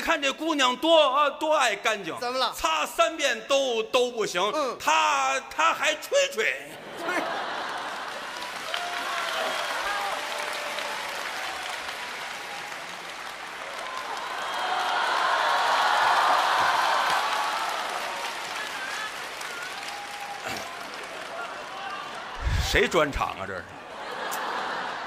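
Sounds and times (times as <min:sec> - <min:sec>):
audience applauding: 0:06.9 - 0:23.3.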